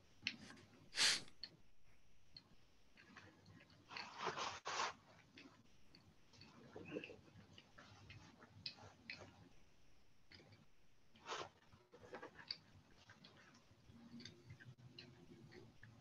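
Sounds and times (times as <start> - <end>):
faint clicks and taps: 0.0 - 16.0.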